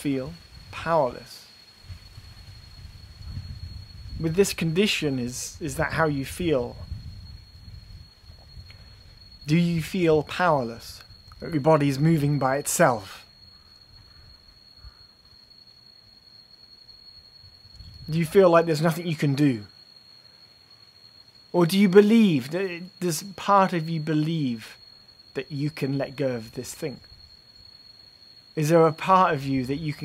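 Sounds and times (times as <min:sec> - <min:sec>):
background hiss: 0:00.0 - 0:30.0
faint high-pitched whine: 0:00.0 - 0:30.0.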